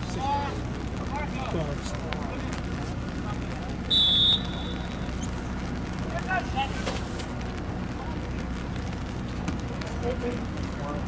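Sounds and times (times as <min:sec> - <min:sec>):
low background rumble: 0:00.0 - 0:11.0
referee's whistle blast: 0:03.9 - 0:05.1.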